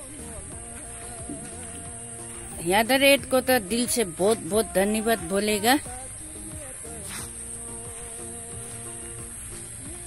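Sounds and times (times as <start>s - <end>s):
high-pitched insect drone: 0.0s - 10.0s.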